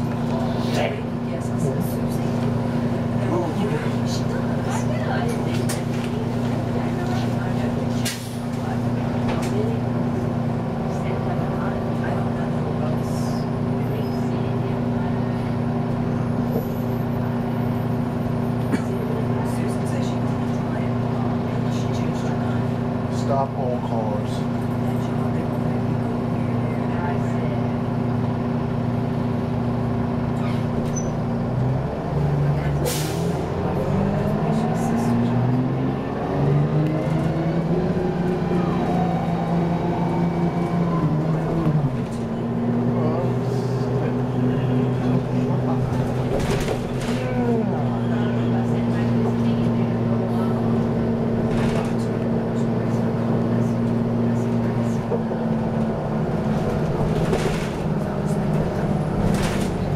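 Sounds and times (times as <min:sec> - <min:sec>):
diesel bus engine droning: 0:00.0 - 0:59.9.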